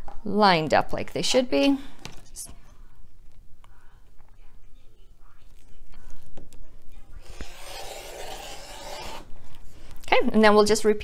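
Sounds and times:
rotary cutter scraping through fabric: 7.2 - 9.3.

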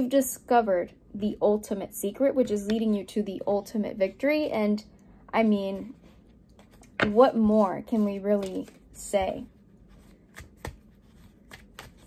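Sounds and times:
cards being shuffled by hand: 7.9 - 12.0.

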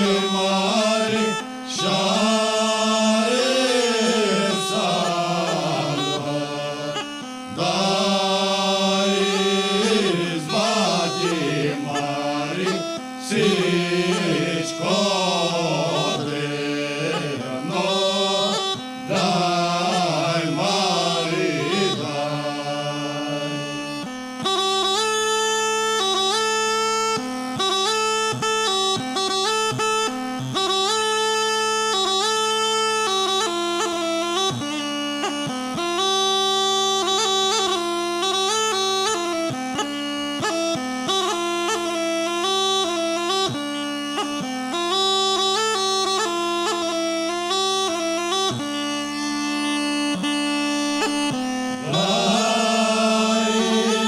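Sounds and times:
men singing: 0.0 - 23.8, 51.8 - 54.0
bagpipe drone: 0.0 - 54.0
ornamented bagpipe melody: 0.0 - 54.0.

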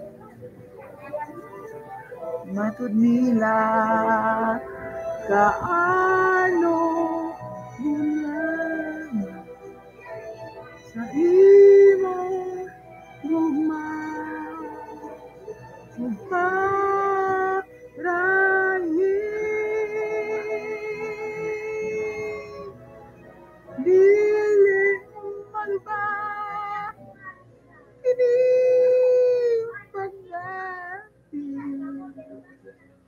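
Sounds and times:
person singing karaoke: 0.0 - 22.8, 23.7 - 27.4, 28.0 - 32.9.

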